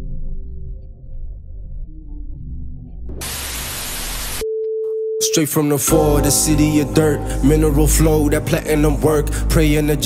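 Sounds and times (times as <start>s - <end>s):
static white noise hiss: 3.2s - 4.4s.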